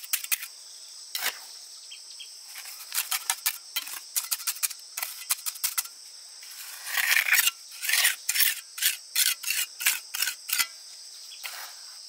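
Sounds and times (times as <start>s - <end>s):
trowel scraping mortar on block: 0.0s - 0.5s, 1.2s - 1.4s, 2.6s - 10.8s
high insect chorus: 0.0s - 12.0s.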